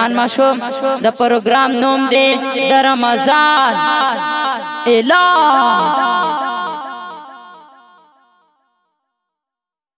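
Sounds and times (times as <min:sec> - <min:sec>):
sung vocal with echo: 0:00.0 - 0:08.8.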